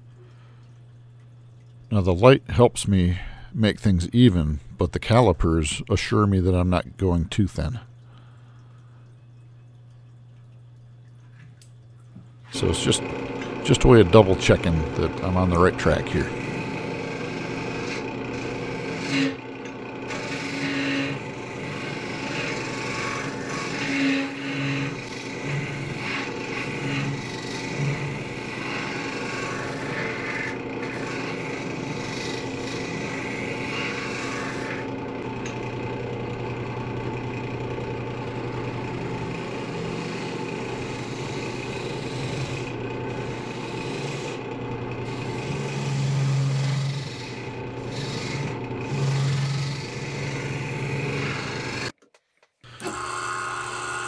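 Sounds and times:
lathe low hum: 0:11.3 - 0:52.0, 0:52.7 - 0:54.0
gouge scraping wood on lathe: 0:12.6 - 0:19.5, 0:20.1 - 0:35.6, 0:38.8 - 0:51.9.

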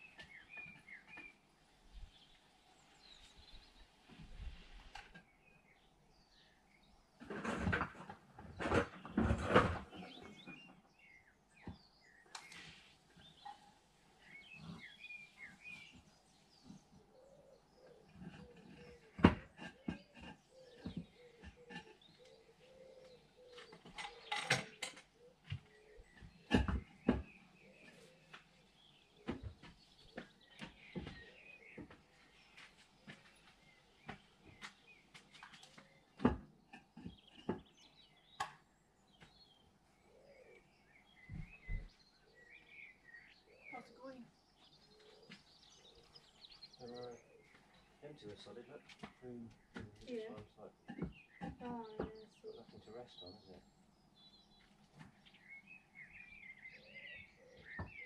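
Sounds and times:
small birds chirping: 0:00.0 - 0:58.0.

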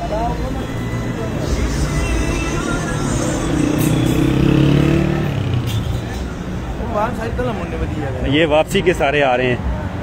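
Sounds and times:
van engine passing: 0:00.0 - 0:08.2
road traffic: 0:00.0 - 0:10.0.

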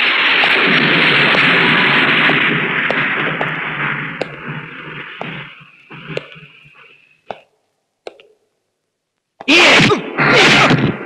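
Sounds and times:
man shouting or grunting: 0:09.4 - 0:10.7.

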